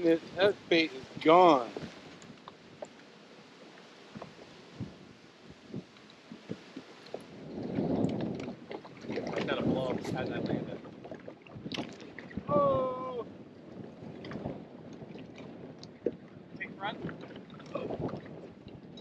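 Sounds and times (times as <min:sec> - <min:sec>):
choppy water: 0:00.0 - 0:19.0
wind: 0:00.0 - 0:19.0.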